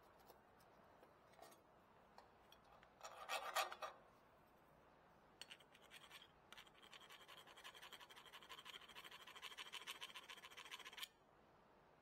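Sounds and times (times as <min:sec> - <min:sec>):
metal file scraping: 0:03.0 - 0:04.0.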